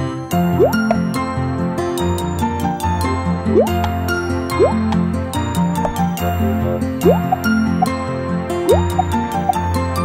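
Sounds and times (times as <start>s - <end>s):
bright children's music: 0.2s - 10.0s.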